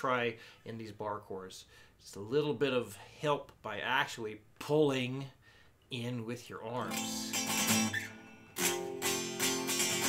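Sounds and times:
electric guitar chord strummed: 7.3 - 10.0.

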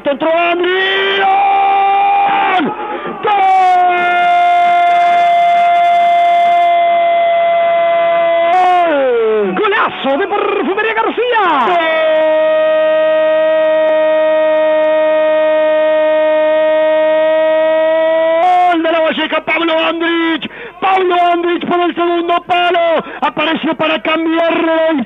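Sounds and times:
radio commentator shouting goal: 0.0 - 25.0.

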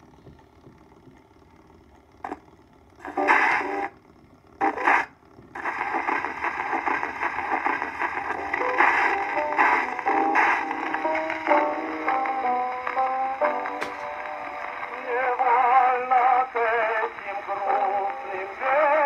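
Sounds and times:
instrumental music on gramophone: 3.0 - 3.9, 4.6 - 19.0.

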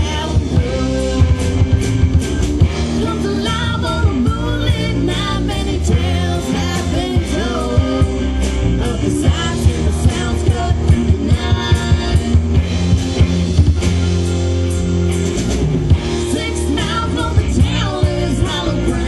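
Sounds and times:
rock band playing: 0.0 - 19.0.

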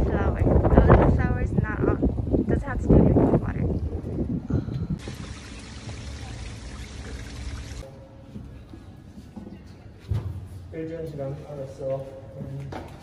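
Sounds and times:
running water: 5.0 - 7.8.

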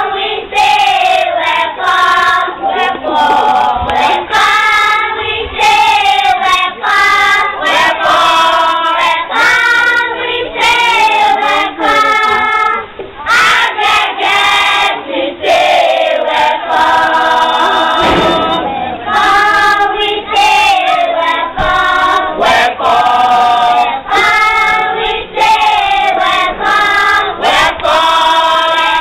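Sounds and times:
group of people singing: 0.0 - 29.0.

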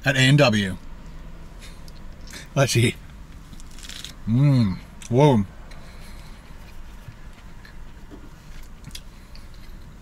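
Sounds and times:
low hum inside car: 0.0 - 10.0
chewing crispy food: 5.7 - 10.0.

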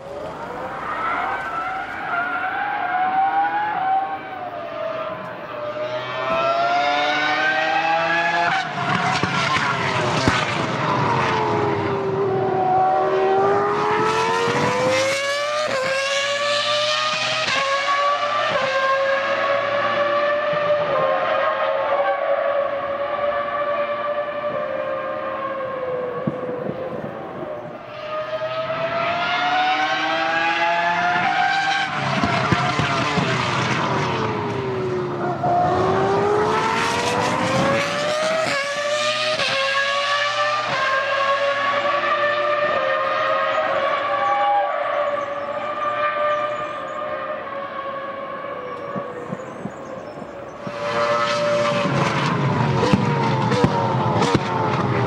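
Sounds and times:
racing car engine revving: 0.0 - 27.1, 27.8 - 49.5, 50.5 - 55.0.

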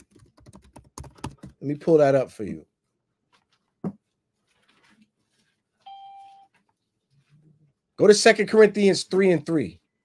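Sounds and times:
electronic chime: 5.9 - 6.5.

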